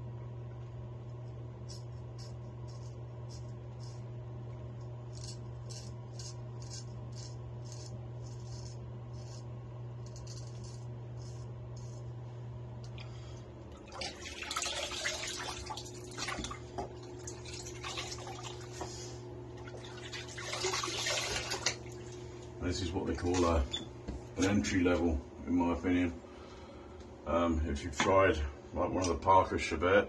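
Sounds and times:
razor scraping stubble: 0:01.1 - 0:12.3
tap water splashing into sink: 0:13.9 - 0:18.6, 0:19.8 - 0:21.8.

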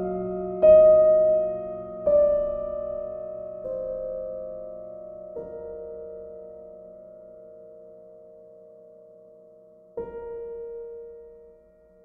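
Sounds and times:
soft piano chords: 0:00.0 - 0:12.0.

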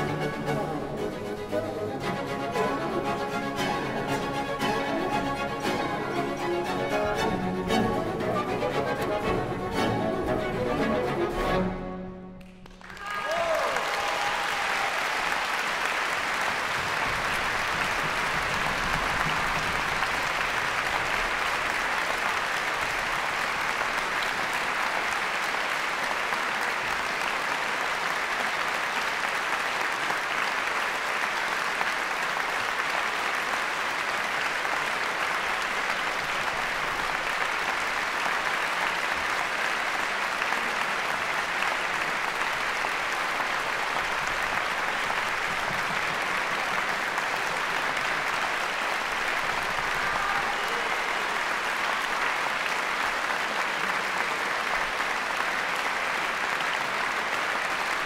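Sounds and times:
audience applauding: 0:00.0 - 0:58.0.

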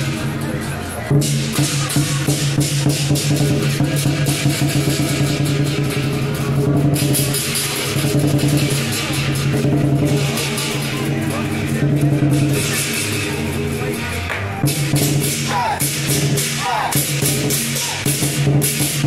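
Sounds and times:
drum beats: 0:00.0 - 0:19.0
cymbal clashes: 0:01.1 - 0:19.0.

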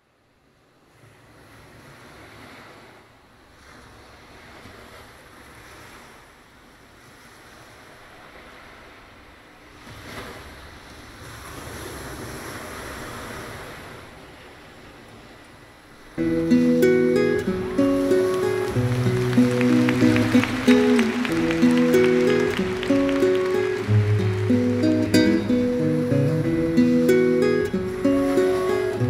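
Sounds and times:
ocean waves washing: 0:07.2 - 0:29.0.

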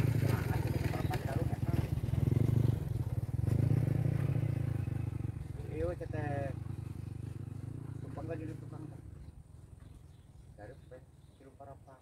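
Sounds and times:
small motorcycle engine running: 0:00.0 - 0:10.2.

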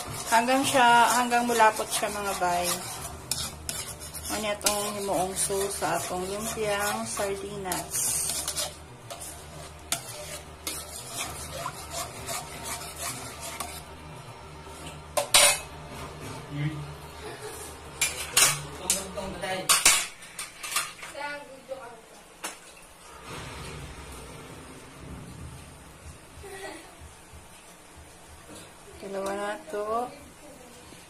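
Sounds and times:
metal spoon scraping in wok: 0:00.0 - 0:14.0, 0:15.2 - 0:15.8.

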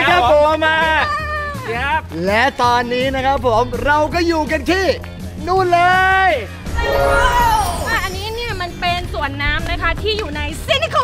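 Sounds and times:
background music: 0:00.0 - 0:11.0
high sing-song voice: 0:06.8 - 0:08.5.

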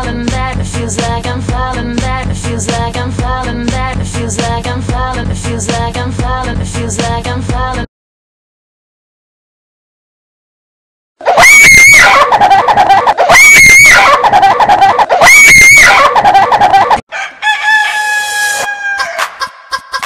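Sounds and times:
electronic pop music: 0:00.0 - 0:07.9
high-pitched shrieking cry: 0:11.2 - 0:17.0, 0:17.7 - 0:19.4.

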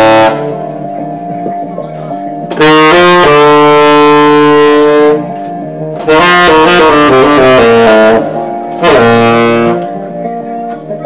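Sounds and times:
tenor saxophone note: 0:00.0 - 0:01.0, 0:02.1 - 0:10.4
sustained backing chords: 0:00.0 - 0:11.0.

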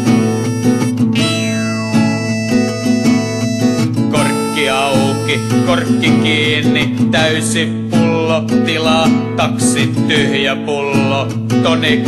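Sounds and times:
guitar chords: 0:00.0 - 0:12.0.

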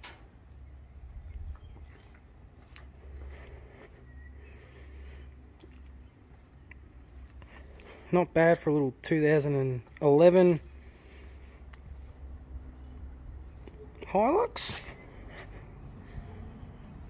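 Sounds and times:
low uneven rumble: 0:00.3 - 0:08.1, 0:09.7 - 0:14.2, 0:14.8 - 0:17.0
faint bird chirps: 0:00.6 - 0:02.6, 0:03.9 - 0:05.3.

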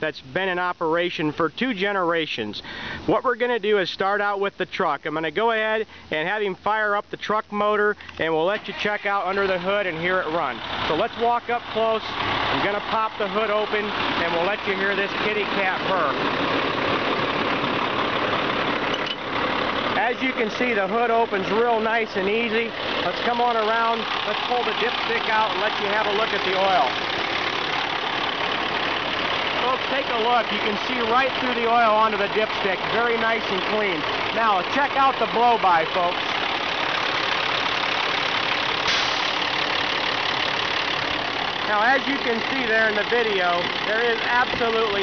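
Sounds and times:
diesel truck engine idling: 0:00.0 - 0:45.0.

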